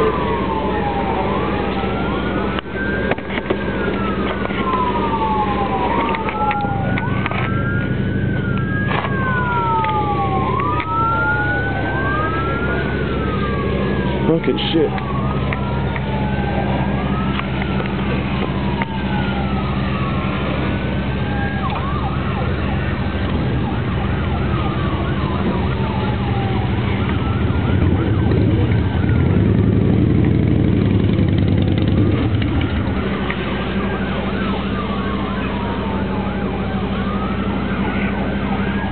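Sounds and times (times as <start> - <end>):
emergency siren wailing: 0.0 - 38.9
low engine hum: 0.0 - 38.9.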